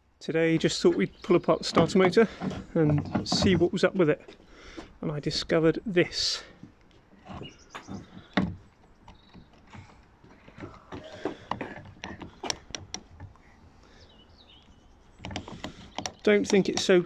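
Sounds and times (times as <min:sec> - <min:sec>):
metallic clicks and knocks: 0:00.6 - 0:04.1, 0:06.6 - 0:13.5, 0:15.2 - 0:17.0.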